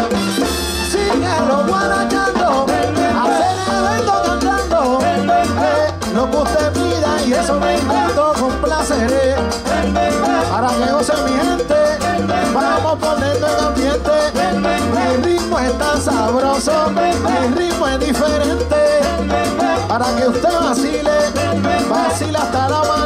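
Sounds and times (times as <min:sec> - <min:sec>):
salsa orchestra playing: 0:00.0 - 0:23.0.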